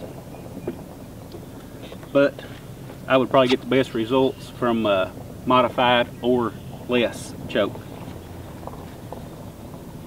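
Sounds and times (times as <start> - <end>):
wind rumble on microphone: 4.4 - 10.0.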